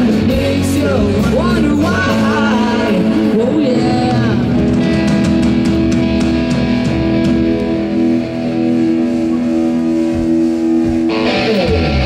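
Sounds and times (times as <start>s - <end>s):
electric guitar sustained chord: 2.4s - 12.0s
low drum thumps: 4.1s - 8.0s.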